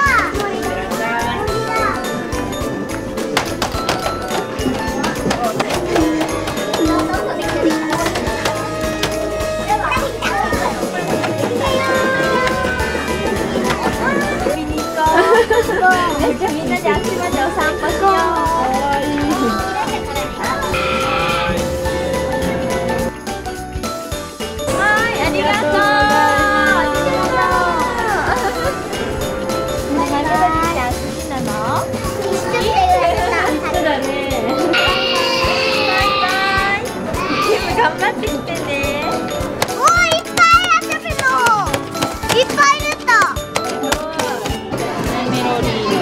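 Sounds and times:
children's voices: 0:00.0 - 0:02.8, 0:04.1 - 0:23.1, 0:24.7 - 0:46.0
background music: 0:00.0 - 0:46.0
girls' excited voices: 0:24.7 - 0:28.8, 0:31.8 - 0:39.0
girl squealing: 0:34.8 - 0:36.6.

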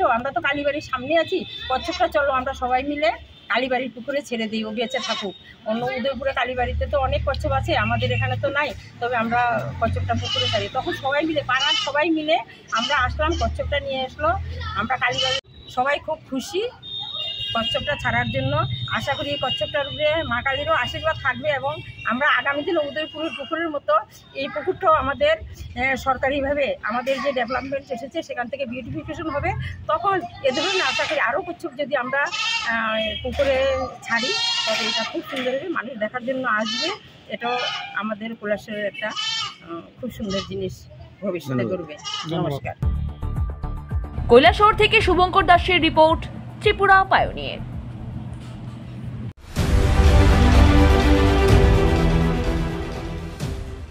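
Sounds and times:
woman speaking: 0:00.0 - 0:16.8, 0:17.6 - 0:42.8, 0:44.3 - 0:47.6.

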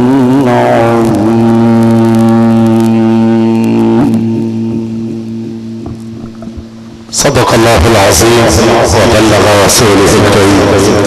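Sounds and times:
man reciting a long note: 0:00.0 - 0:05.1, 0:07.1 - 0:11.0
steady low hum: 0:00.0 - 0:11.0.

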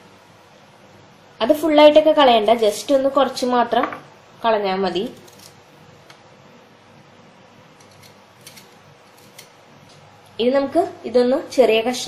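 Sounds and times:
faint steady hum: 0:00.0 - 0:12.0
knife scraping and clicking on seed: 0:05.2 - 0:05.6, 0:07.8 - 0:09.5.

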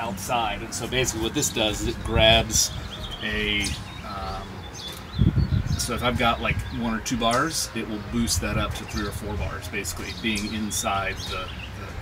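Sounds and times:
man talking: 0:00.0 - 0:04.6, 0:05.7 - 0:12.0.

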